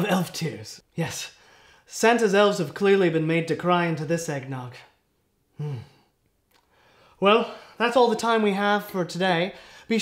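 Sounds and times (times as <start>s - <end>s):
man humming: 5.6s - 6.0s.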